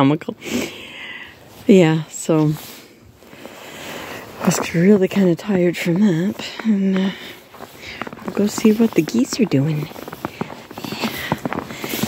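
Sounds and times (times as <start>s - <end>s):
footsteps crunching through snow: 1.3s - 12.0s.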